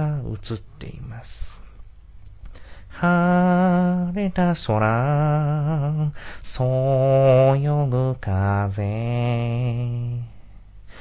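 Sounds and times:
low voice singing unaccompanied: 0:00.0 - 0:01.7, 0:02.9 - 0:10.4.

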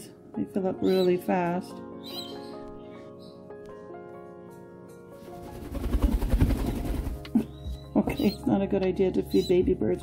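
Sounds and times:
bird wings flapping: 0:05.2 - 0:07.2.

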